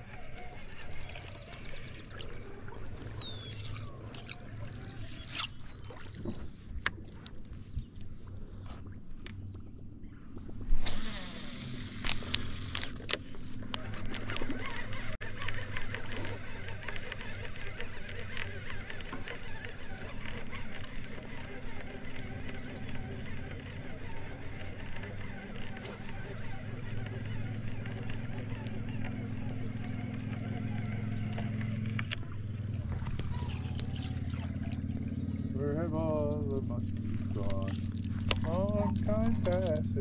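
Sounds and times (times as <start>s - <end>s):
steady low hum: 0.0s - 40.0s
fishing reel clicking: 10.8s - 13.2s, 13.8s - 32.1s.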